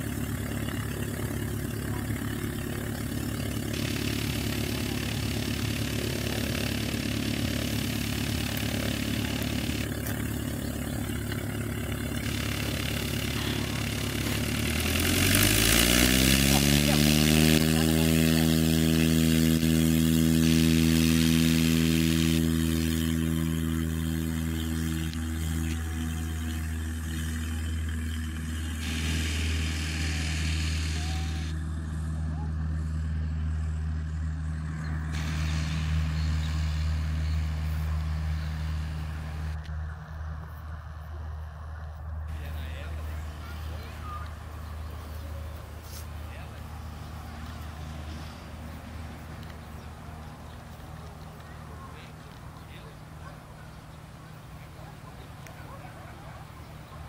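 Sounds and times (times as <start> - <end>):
propeller plane engine: 0.0 - 57.0.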